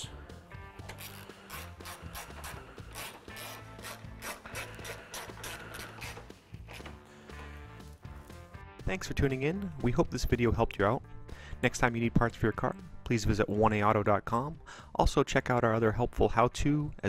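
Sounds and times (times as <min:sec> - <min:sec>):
quiet background music: 0:00.0 - 0:17.0
hand ratchet clicking: 0:00.8 - 0:07.0.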